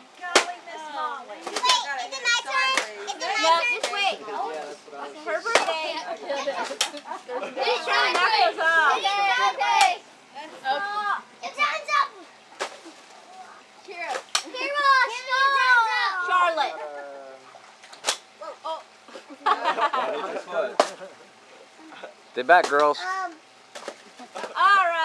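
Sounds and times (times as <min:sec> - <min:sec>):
children shouting and squealing: 0:14.4 - 0:17.4.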